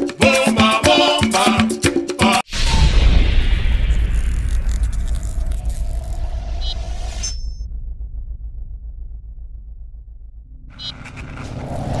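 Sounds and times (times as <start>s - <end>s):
low pulsing rumble: 2.5s - 12.0s
whoosh: 2.5s - 12.0s.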